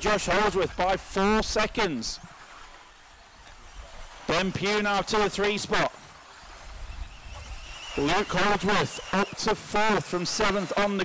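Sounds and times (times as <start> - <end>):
electric rc car motors whining: 0.0 - 11.0.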